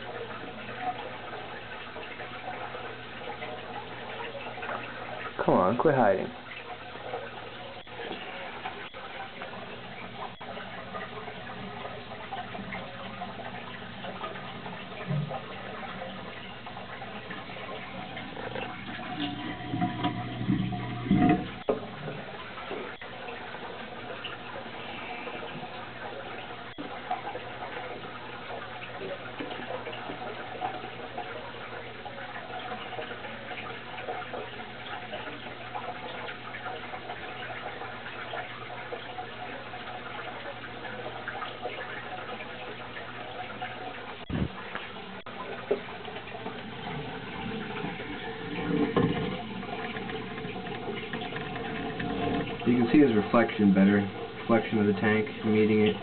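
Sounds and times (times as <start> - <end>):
low steady hum: 0.0 - 56.0
water splashing and trickling: 0.0 - 56.0.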